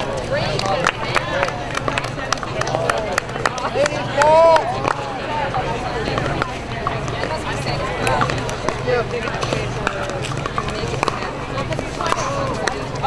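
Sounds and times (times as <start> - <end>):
chatter of voices: 0.0 - 13.0.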